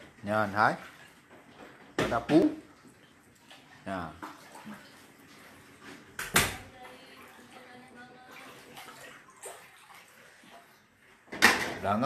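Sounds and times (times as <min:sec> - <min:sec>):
water sloshing on floor: 0:00.0 - 0:12.0.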